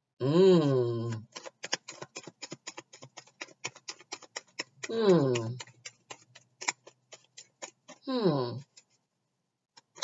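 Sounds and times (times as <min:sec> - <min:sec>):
cards being shuffled: 0:01.0 - 0:09.0, 0:09.8 - 0:10.0.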